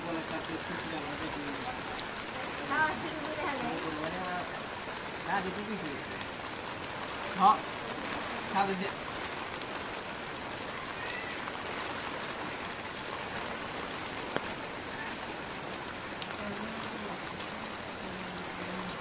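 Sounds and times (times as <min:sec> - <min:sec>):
steady rain: 0:00.0 - 0:19.0.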